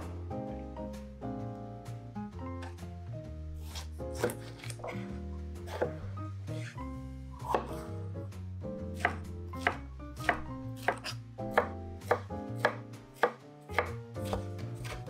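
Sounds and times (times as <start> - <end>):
knife slicing on wooden board: 3.6 - 6.8, 7.4 - 7.9, 9.0 - 15.0.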